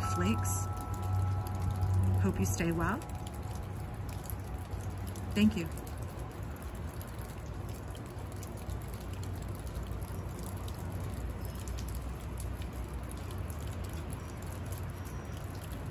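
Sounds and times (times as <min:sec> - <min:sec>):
low steady rumble: 0:00.0 - 0:11.4.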